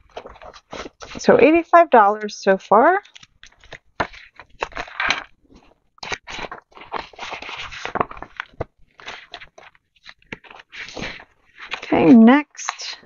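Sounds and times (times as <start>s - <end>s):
plastic pages rustling: 0.0s - 1.3s, 3.0s - 12.8s.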